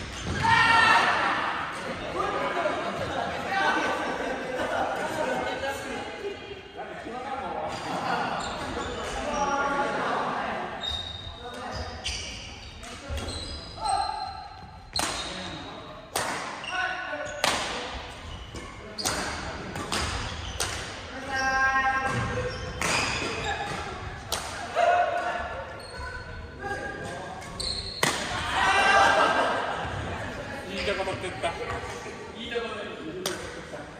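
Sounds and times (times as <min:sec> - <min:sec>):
rackets hitting shuttlecocks: 0:18.5 - 0:21.0, 0:28.0 - 0:28.4.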